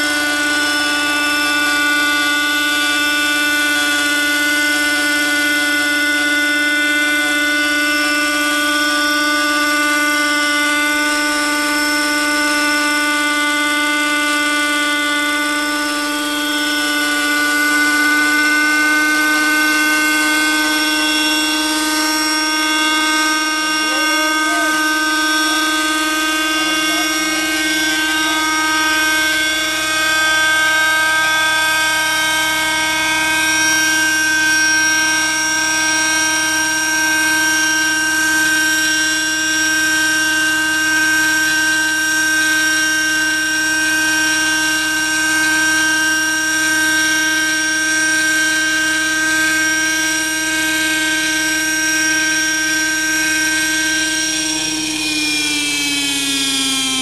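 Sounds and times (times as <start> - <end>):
model helicopter engine whine: 0.0 - 57.0.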